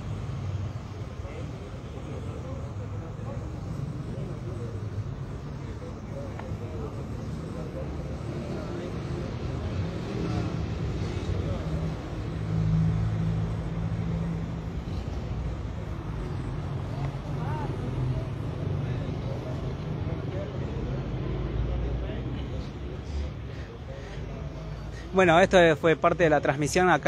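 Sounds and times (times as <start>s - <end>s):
vehicle engine hum: 0.0s - 26.7s
faint voices: 0.0s - 27.0s.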